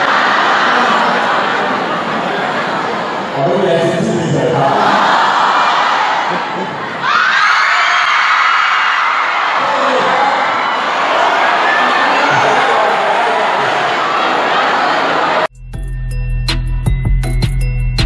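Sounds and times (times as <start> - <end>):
crowd cheering and screaming: 0.0 - 3.3, 4.5 - 15.5.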